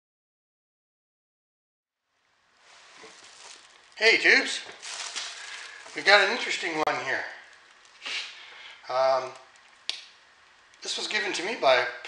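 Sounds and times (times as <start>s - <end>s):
rustling and handling noise: 2.5s - 11.6s.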